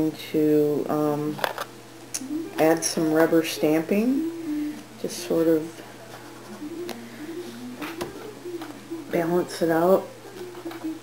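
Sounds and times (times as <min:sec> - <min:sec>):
faint background tune: 0:00.0 - 0:11.0.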